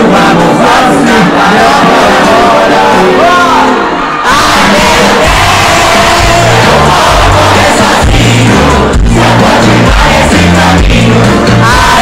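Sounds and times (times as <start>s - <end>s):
crowd voices: 0.0s - 12.0s
live pop music: 0.0s - 12.0s
pulsing bass line: 4.7s - 12.0s.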